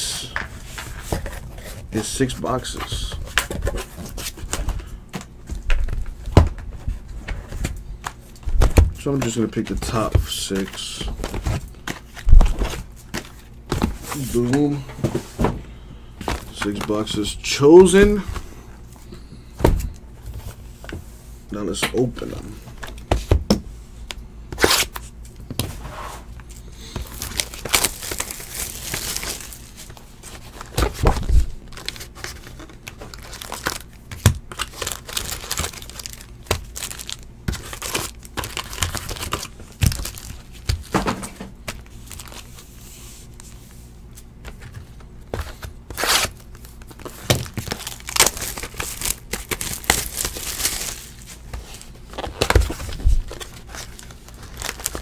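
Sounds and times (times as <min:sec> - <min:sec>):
plastic shrink wrap tearing: 0:27.0 - 0:30.8, 0:31.7 - 0:40.8, 0:45.9 - 0:51.2, 0:52.0 - 0:55.0.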